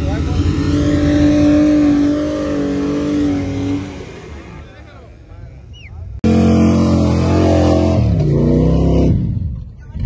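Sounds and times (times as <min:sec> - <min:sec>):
engine revving hard: 0:00.0 - 0:04.7, 0:06.2 - 0:09.5.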